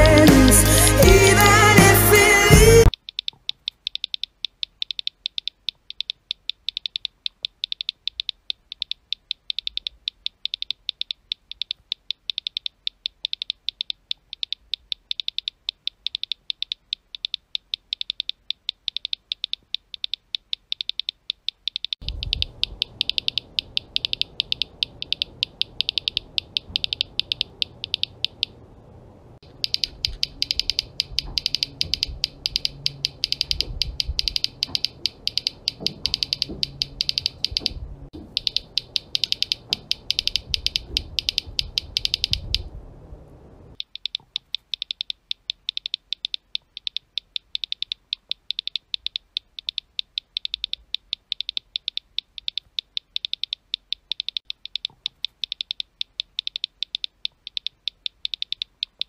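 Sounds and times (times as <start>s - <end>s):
phone keyboard clicks: 2.9s - 28.6s, 29.4s - 42.7s, 43.8s - 59.0s
low room hum: 22.0s - 43.8s.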